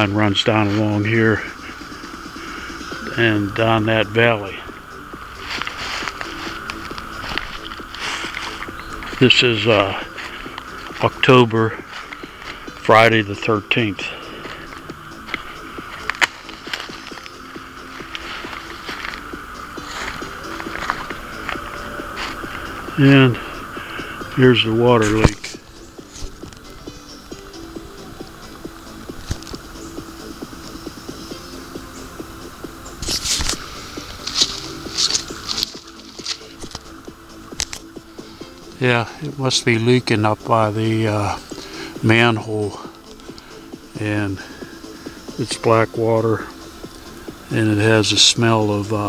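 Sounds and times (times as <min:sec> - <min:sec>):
footsteps crunching dry leaves: 0:00.0 - 0:27.7, 0:33.0 - 0:39.2
faint rhythmic low pulsing: 0:00.0 - 0:49.0
steady hiss: 0:00.0 - 0:49.0.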